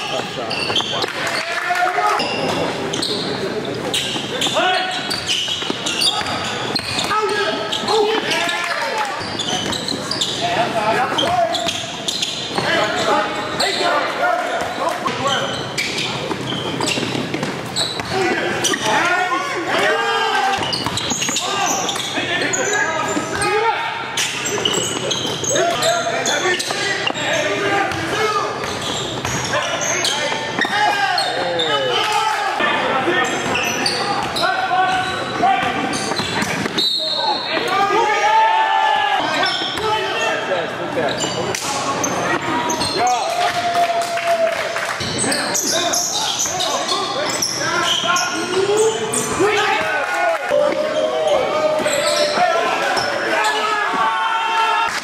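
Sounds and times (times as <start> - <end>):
players' voices and shouts: 0.0 - 55.0.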